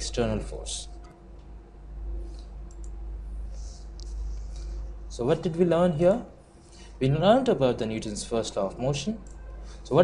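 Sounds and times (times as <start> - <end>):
low electrical hum: 0.0 - 10.0
computer mouse clicks: 2.3 - 3.0.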